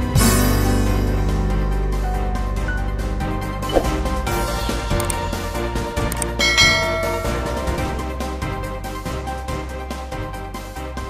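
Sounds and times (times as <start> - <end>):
background music: 0.0 - 11.0
bright bell-like chime: 6.4 - 8.1.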